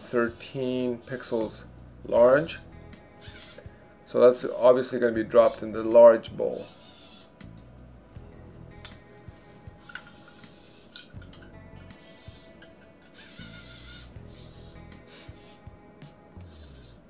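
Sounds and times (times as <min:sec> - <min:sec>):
quiet background music: 0:00.0 - 0:17.0
robot arm servos whirring: 0:03.2 - 0:03.6, 0:06.6 - 0:07.3, 0:09.8 - 0:11.1, 0:12.0 - 0:12.4, 0:13.1 - 0:14.8, 0:15.4 - 0:15.6, 0:16.5 - 0:17.0.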